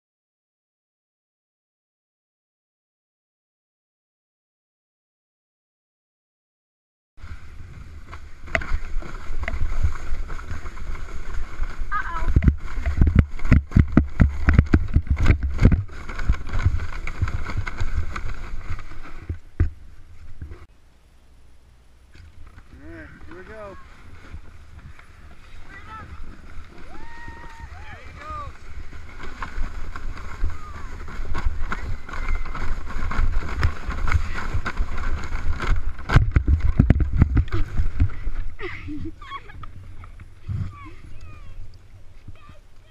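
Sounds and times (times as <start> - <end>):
sled scraping on snow: 7.2 - 20.7, 22.4 - 42.9
wind rumbling on microphone: 7.2 - 20.7, 22.3 - 42.9.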